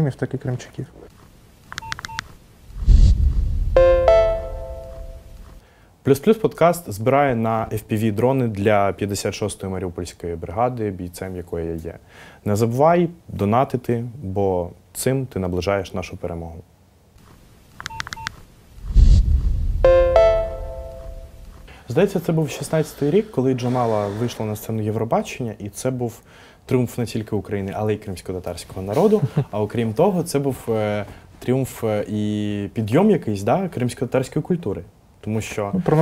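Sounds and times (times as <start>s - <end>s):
low rumble into bass hit: 2.8s - 3.8s, 18.8s - 19.8s
low whoosh: 2.8s - 3.8s, 18.8s - 19.9s
short electronic beeps: 3.7s - 5.4s, 19.8s - 21.5s.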